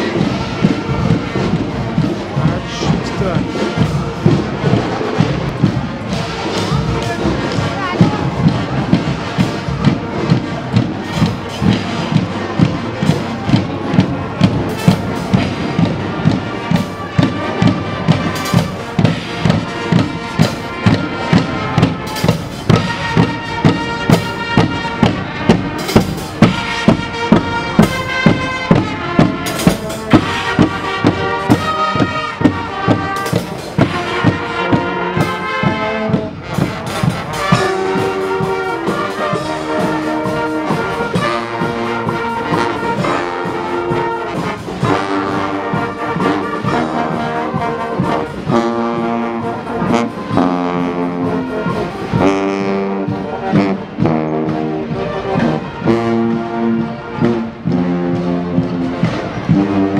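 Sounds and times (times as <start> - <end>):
brass band chords: 0.0 - 59.9
marching drums beating: 0.0 - 59.9.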